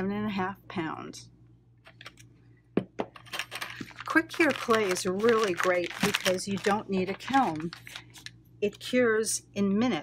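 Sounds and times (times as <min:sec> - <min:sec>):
foil pouches crinkling: 0:03.3 - 0:08.4.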